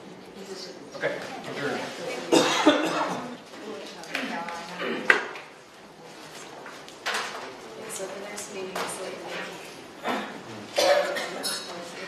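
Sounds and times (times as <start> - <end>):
people talking: 0.4 - 5.2, 7.7 - 12.0
person coughing: 2.3 - 3.3, 10.0 - 11.7.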